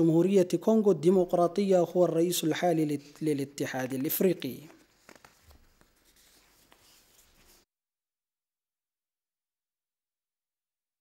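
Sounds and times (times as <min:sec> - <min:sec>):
soft clicks and rustles: 0:04.5 - 0:07.6.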